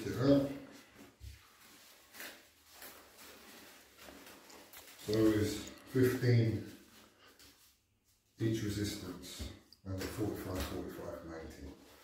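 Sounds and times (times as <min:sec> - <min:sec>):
resistance bands rustling: 0:00.1 - 0:08.4.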